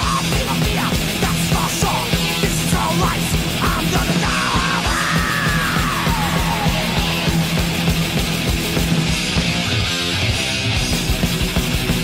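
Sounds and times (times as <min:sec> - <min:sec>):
fast heavy metal drumming: 0:00.0 - 0:12.0.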